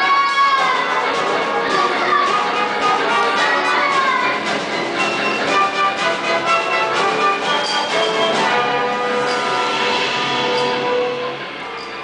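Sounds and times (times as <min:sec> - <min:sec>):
sustained orchestral instruments: 0:00.0 - 0:12.0.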